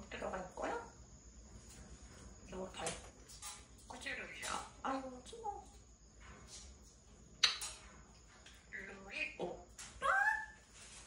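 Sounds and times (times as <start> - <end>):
parrot talking: 8.7 - 10.6.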